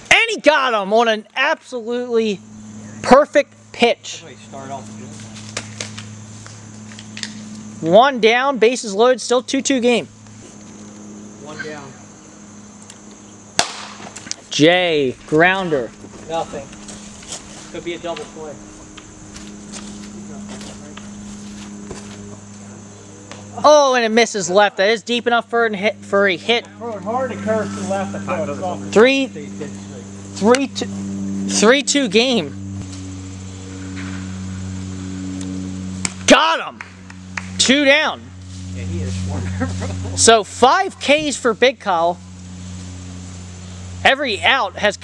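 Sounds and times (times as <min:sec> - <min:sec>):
men talking: 0:00.0 - 0:05.4, 0:07.8 - 0:10.6, 0:11.3 - 0:12.2, 0:14.4 - 0:18.9, 0:19.7 - 0:32.7, 0:36.2 - 0:36.8, 0:37.5 - 0:42.2, 0:44.0 - 0:45.0
low hum: 0:00.0 - 0:45.0.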